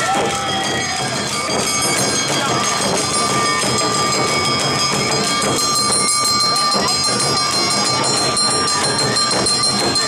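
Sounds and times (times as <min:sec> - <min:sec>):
drums beaten with sticks: 0:00.0 - 0:10.0
high ringing tone: 0:01.3 - 0:10.0.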